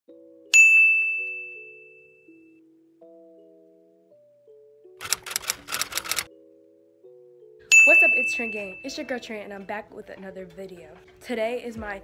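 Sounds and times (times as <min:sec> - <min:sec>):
bright chime ding: 0:00.6 - 0:02.3, 0:07.7 - 0:09.0.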